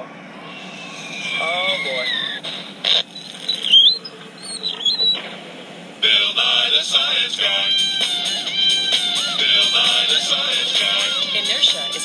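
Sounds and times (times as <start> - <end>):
high-pitched wavering squeaks: 0.0 - 5.2, 7.4 - 12.0.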